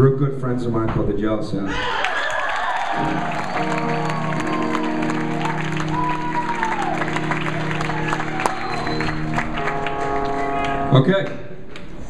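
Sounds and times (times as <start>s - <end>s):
crowd clapping and cheering: 1.7s - 12.0s
electric guitar notes ringing: 3.0s - 11.2s.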